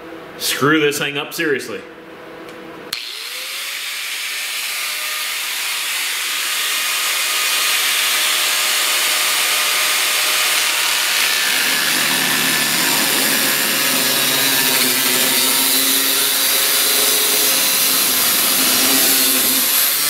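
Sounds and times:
angle grinder grinding metal: 2.9s - 20.0s.

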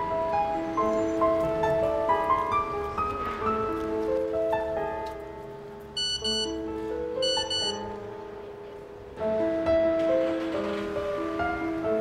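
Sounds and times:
film music with keyboard notes: 0.0s - 12.0s
phone text message beeps: 6.0s - 6.6s, 7.2s - 7.9s.

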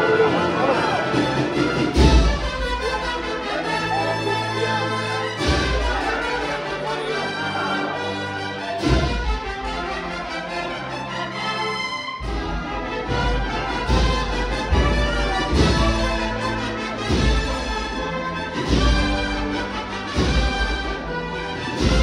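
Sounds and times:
brass band playing a march: 0.0s - 22.0s.

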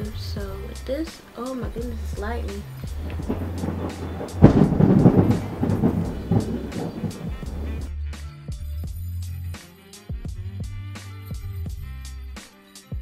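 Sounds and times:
background music with steady beat: 0.0s - 13.0s
thunder rumbling: 1.8s - 7.9s.

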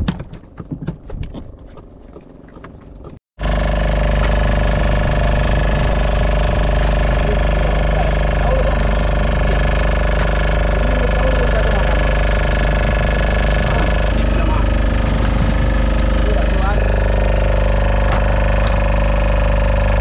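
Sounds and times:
boat engine running: 1.2s - 20.0s.

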